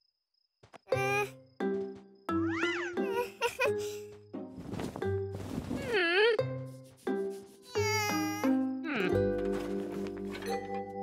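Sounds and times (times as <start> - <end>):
cartoon baby voice cooing: 2.5 - 3.2, 7.7 - 9.2.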